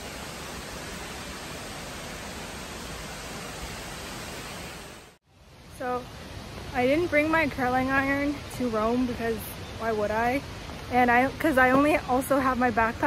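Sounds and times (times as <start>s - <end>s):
waterfall rushing: 0.0s - 5.2s.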